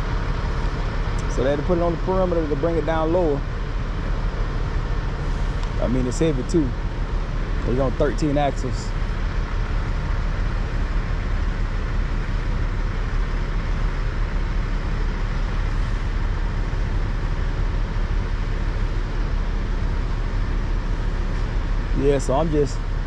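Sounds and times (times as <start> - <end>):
crane diesel engine running: 0.0 - 23.0.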